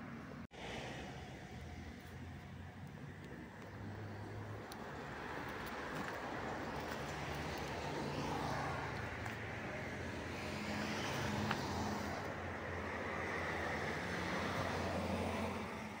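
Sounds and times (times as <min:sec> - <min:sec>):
street traffic noise: 0:00.0 - 0:16.0.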